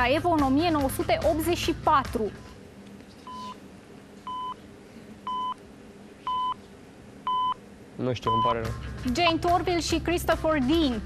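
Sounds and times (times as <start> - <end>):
countdown timer beeping: 8.3 - 8.7.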